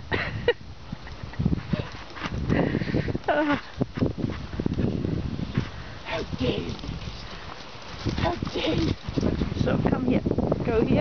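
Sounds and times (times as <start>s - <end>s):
horse hooves on soft dirt: 1.0s - 11.0s.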